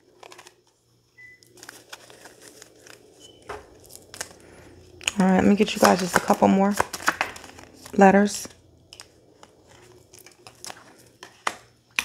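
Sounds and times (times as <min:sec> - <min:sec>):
paper slips crinkling: 0:00.0 - 0:11.5.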